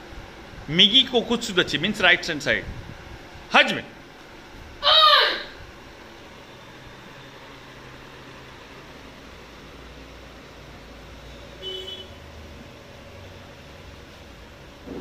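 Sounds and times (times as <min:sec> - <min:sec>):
room hum and hiss: 0:00.0 - 0:15.0.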